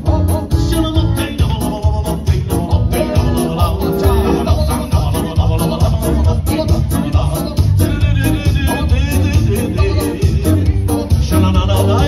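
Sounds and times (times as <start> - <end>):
electronic keyboard: 0.0 - 8.2
people singing into microphones: 0.0 - 12.0
steady bass beat: 0.0 - 12.0.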